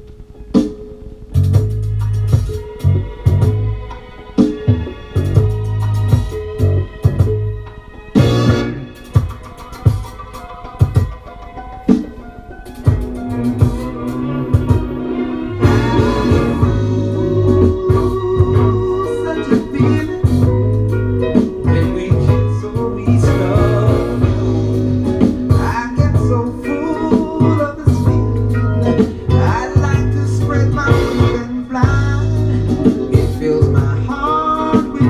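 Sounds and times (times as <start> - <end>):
soul ballad from vinyl record: 0.0 - 35.0.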